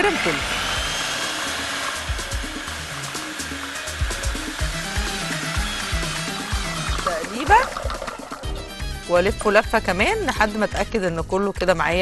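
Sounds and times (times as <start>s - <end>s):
food processor motor whirring: 0.0s - 8.6s.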